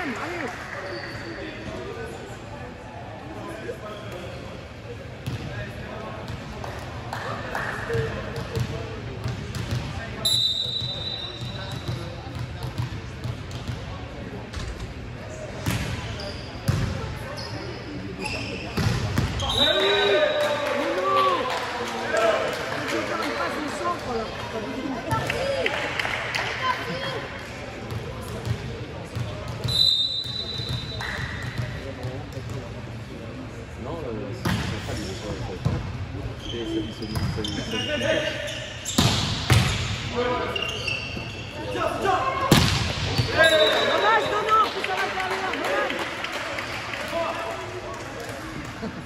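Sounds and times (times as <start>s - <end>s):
players calling and shouting: 36.4s - 46.0s.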